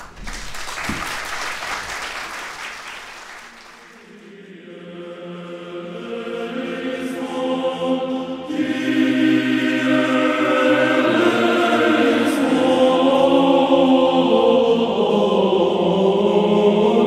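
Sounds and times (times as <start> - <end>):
audience applause: 0.0 - 4.1
choir singing held chords: 3.8 - 17.0.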